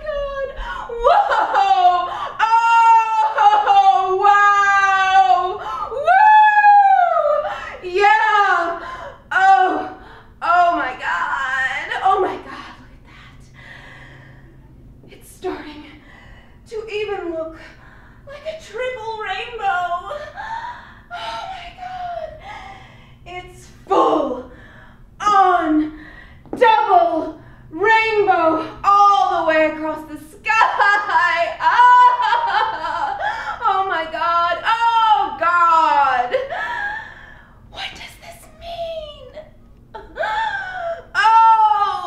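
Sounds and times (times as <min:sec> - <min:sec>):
woman wailing and sobbing: 0:00.0 - 0:12.9, 0:18.3 - 0:24.4, 0:30.5 - 0:37.3, 0:37.9 - 0:42.0
woman whimpering cries: 0:00.1 - 0:10.0, 0:19.9 - 0:22.9, 0:30.8 - 0:37.3, 0:40.0 - 0:42.0.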